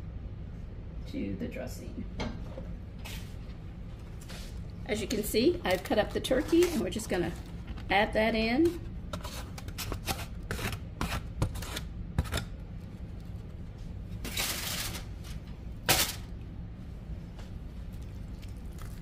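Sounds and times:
steady low hum: 0:00.0 - 0:19.0
utensil scraping on plate: 0:09.1 - 0:12.4.

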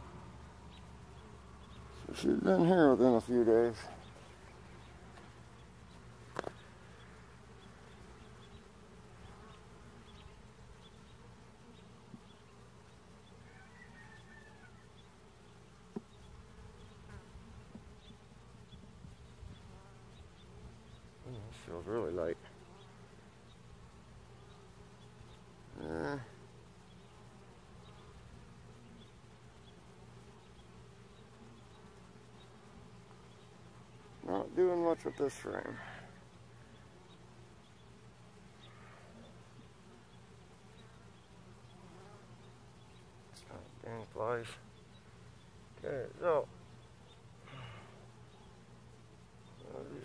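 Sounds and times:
bee flying close past: 0:00.0 - 0:50.0
bees humming: 0:00.0 - 0:50.0.

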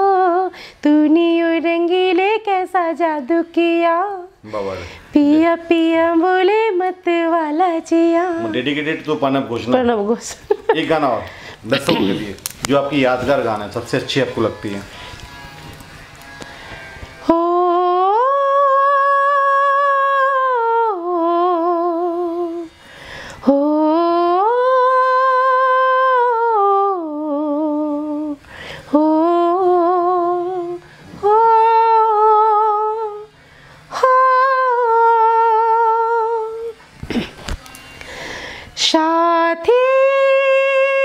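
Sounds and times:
woman singing unaccompanied: 0:00.0 - 0:04.4, 0:05.0 - 0:10.8, 0:17.1 - 0:37.0, 0:38.7 - 0:41.0
sharp breath: 0:14.9 - 0:15.4, 0:22.7 - 0:23.4, 0:28.4 - 0:28.9, 0:37.9 - 0:38.8.

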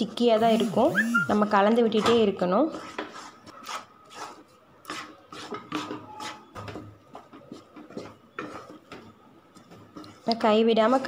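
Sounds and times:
wooden spatula stirring in a pan: 0:00.0 - 0:11.0.

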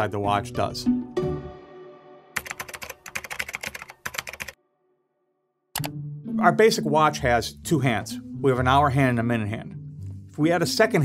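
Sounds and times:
computer keyboard typing: 0:02.4 - 0:04.6, 0:05.8 - 0:06.0.

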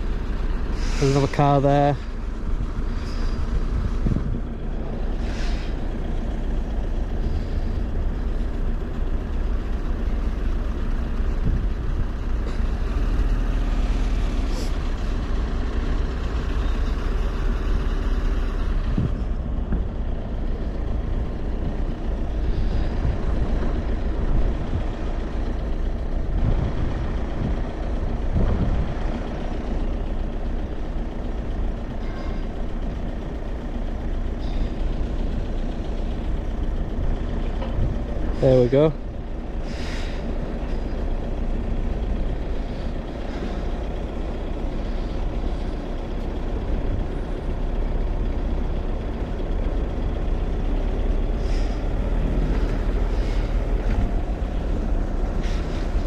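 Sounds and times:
vehicle engines rumbling: 0:00.0 - 0:56.0.

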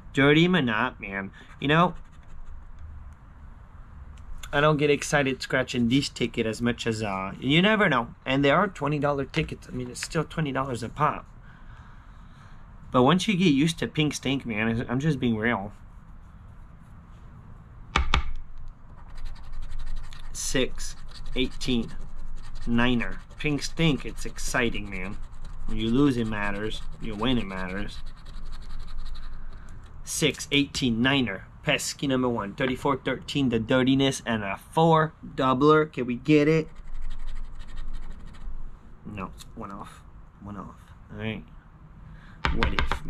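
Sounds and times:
scratching lottery ticket: 0:01.4 - 0:02.8, 0:18.9 - 0:29.6, 0:36.6 - 0:38.5
chip tapping on ticket: 0:42.5 - 0:43.0.

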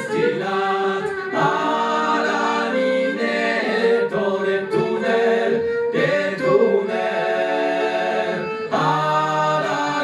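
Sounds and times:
men singing in harmony: 0:00.0 - 0:10.0.

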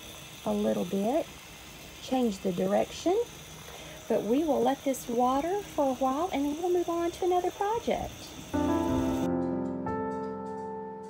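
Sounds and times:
garden hose spraying water: 0:00.0 - 0:09.3
gentle piano music: 0:08.6 - 0:11.0.

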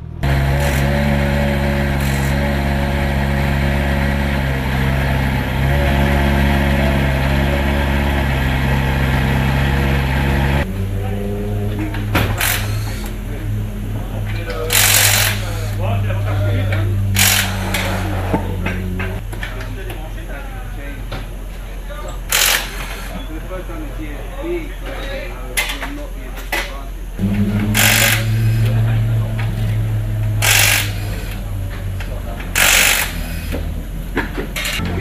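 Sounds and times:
steady low hum: 0:00.0 - 0:25.5, 0:26.1 - 0:35.0
pneumatic impact wrench burst: 0:00.2 - 0:03.4, 0:12.2 - 0:13.2, 0:14.7 - 0:15.8, 0:17.1 - 0:18.6, 0:22.2 - 0:23.3, 0:27.2 - 0:29.0, 0:30.3 - 0:31.6, 0:32.5 - 0:33.7.

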